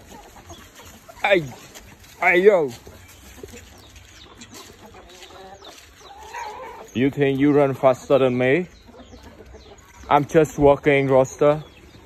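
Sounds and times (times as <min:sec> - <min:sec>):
chickens clucking: 0:00.0 - 0:12.0.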